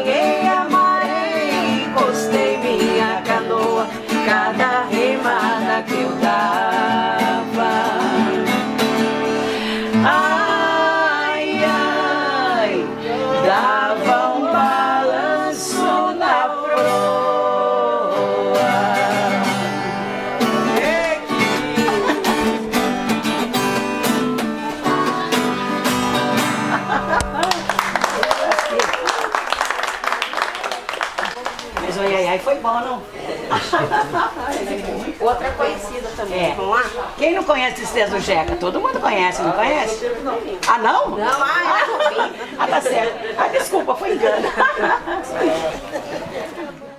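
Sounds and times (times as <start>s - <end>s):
women singing in harmony: 0.0s - 22.6s
strummed acoustic guitars: 0.0s - 28.2s
audience applauding: 26.8s - 32.4s.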